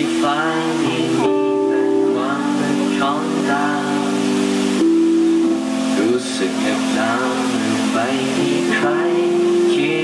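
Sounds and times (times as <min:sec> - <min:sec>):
band playing held chords: 0:00.0 - 0:10.0
person singing: 0:00.0 - 0:10.0.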